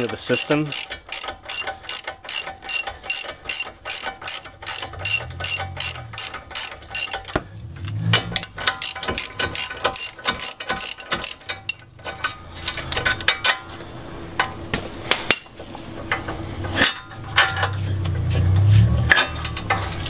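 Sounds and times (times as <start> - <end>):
socket ratchet clicking: 0.0 - 13.5.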